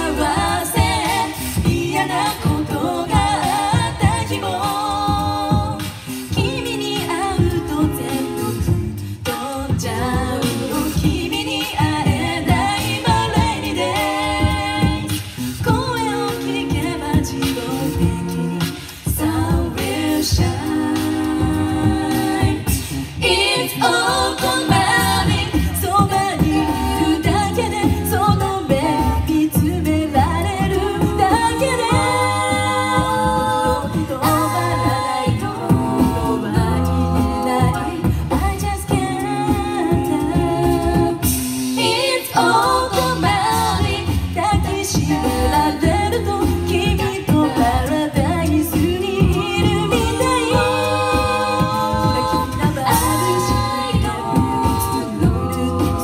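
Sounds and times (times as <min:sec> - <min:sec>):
backing vocal harmonies: 0:00.0 - 0:56.0
lead singing voice: 0:00.0 - 0:56.0
vocal percussion beat: 0:00.0 - 0:56.0.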